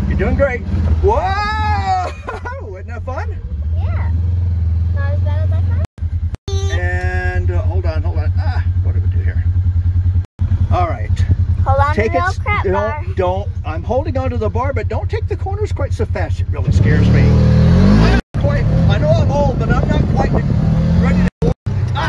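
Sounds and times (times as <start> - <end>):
vehicle engine droning: 0.0 - 22.0
voices: 4.9 - 5.9, 6.5 - 9.5, 10.7 - 22.0.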